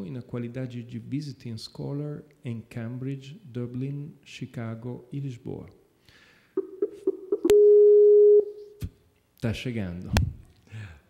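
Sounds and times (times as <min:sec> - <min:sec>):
long steady call tone: 0:06.8 - 0:08.8
short beeps: 0:07.4 - 0:08.6.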